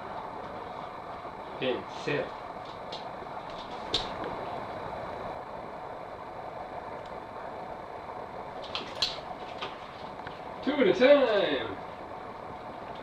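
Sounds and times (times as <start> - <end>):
room hum: 0.0 - 13.0.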